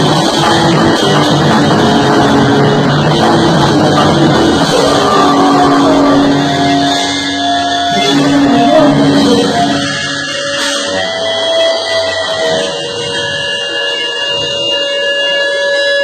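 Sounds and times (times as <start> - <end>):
bass guitar: 0.0 - 14.7
drums: 0.0 - 16.0
electric guitar: 0.0 - 16.0.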